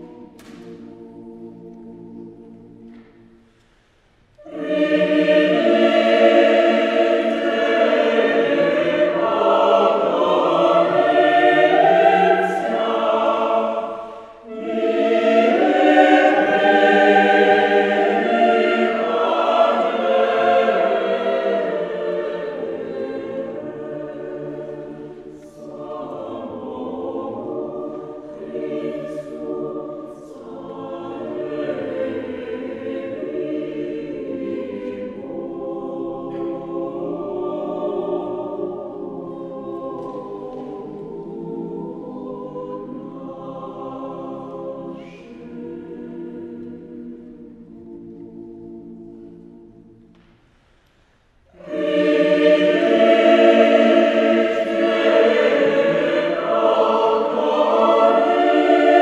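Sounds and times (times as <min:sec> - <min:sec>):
choir singing unaccompanied: 0:00.0 - 0:59.0.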